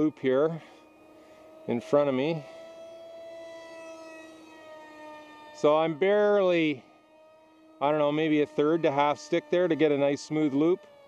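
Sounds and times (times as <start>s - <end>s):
electric motor whine: 0.0s - 11.0s.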